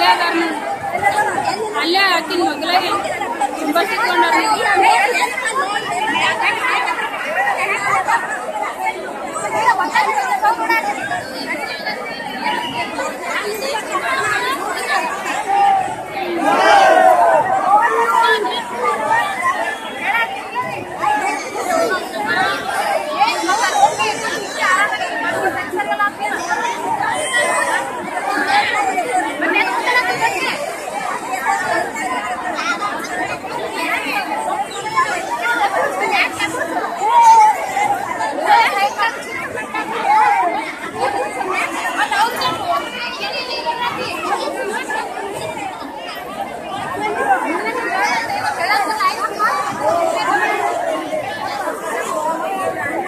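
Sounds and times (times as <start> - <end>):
crowd babble: 0.0 - 53.0.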